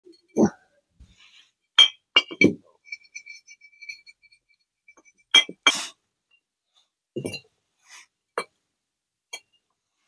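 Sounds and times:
glass bottles clinking: 1.8s - 4.3s, 4.9s - 5.7s, 7.2s - 7.5s.

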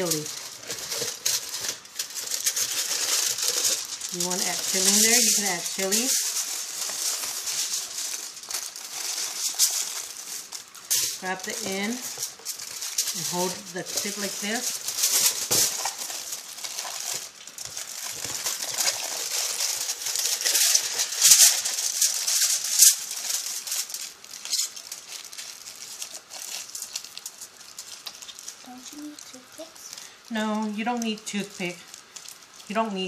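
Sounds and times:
aluminium foil crinkling: 0.0s - 33.0s.

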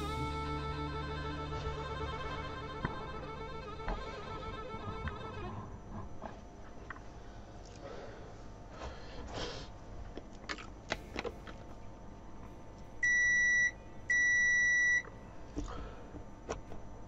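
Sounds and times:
multimeter continuity beep: 13.0s - 15.1s.

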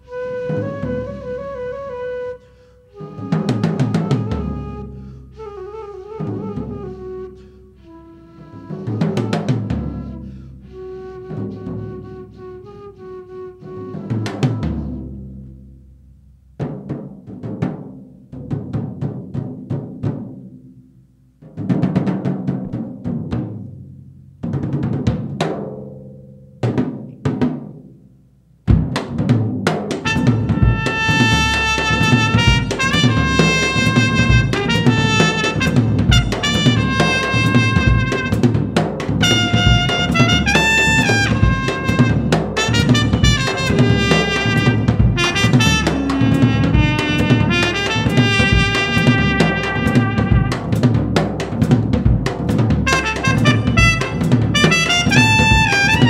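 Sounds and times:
drum kit playing busily: 28.7s - 56.0s
cornet playing held lines: 30.0s - 51.7s, 52.3s - 56.0s.

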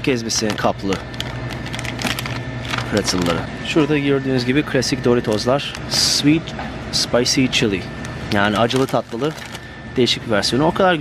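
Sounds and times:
plastic snack bag crackling: 0.0s - 3.4s, 5.1s - 6.2s, 8.3s - 9.7s
steady low hum: 0.0s - 11.0s.

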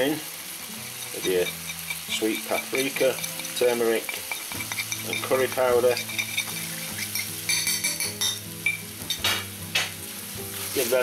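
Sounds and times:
chicken sizzling in oil: 0.0s - 11.0s
metal spoon scraping ceramic bowl: 1.0s - 8.4s.

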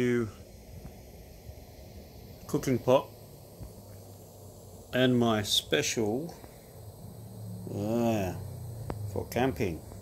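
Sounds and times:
gas stove hissing: 0.0s - 10.0s.

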